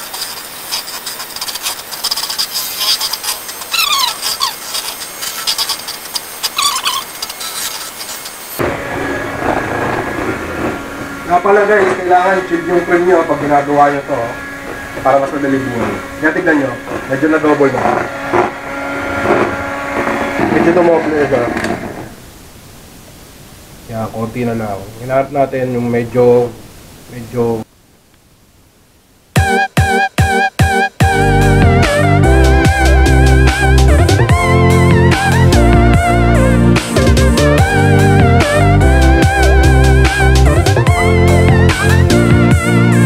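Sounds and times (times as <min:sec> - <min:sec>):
beaters scraping a steel bowl: 0:00.0 - 0:08.6, 0:11.3 - 0:21.9
short falling squeaks: 0:00.0 - 0:08.6
hand mixer motor whine: 0:00.0 - 0:08.8, 0:12.2 - 0:22.2
low background hiss: 0:21.6 - 0:29.4.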